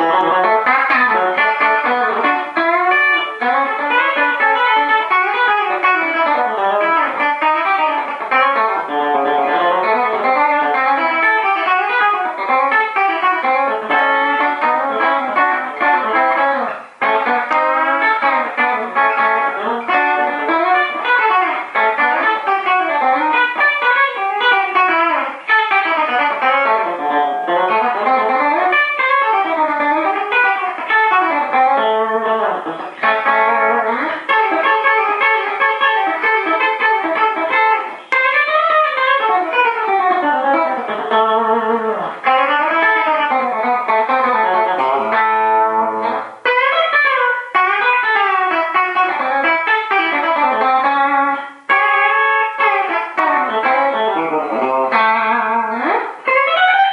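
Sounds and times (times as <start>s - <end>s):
electric guitar solo: 0.0s - 56.9s.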